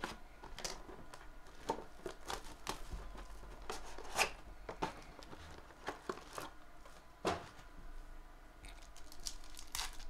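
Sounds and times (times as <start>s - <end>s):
card pack wrappers crinkling: 0.0s - 6.6s, 8.7s - 10.0s.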